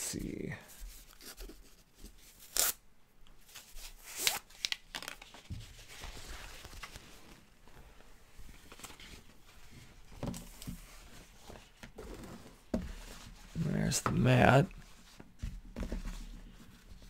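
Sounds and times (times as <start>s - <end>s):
soft rustling of cloth: 5.0s - 17.0s.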